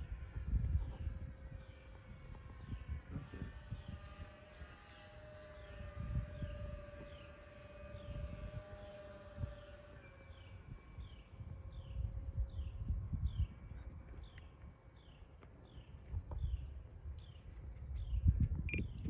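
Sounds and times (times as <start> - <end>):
model airplane motor whining: 0.0 - 18.0
wind rumbling on microphone: 0.0 - 19.0.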